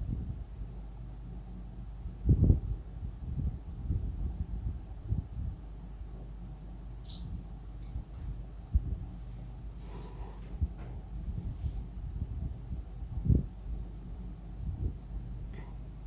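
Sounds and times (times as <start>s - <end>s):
low steady rumble: 0.0s - 16.0s.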